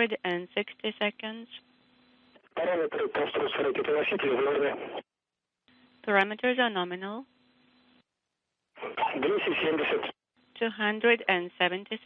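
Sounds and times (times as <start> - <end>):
voice over radio: 2.6 - 5.0, 8.8 - 10.2.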